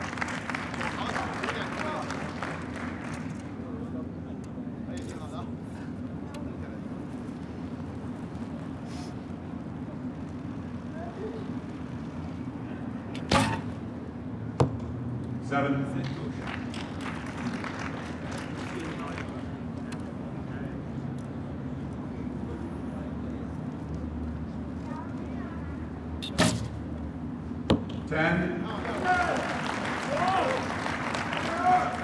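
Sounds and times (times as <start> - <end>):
low background hum: 0.0 - 32.0
arrow striking target: 13.2 - 13.8, 26.2 - 26.8.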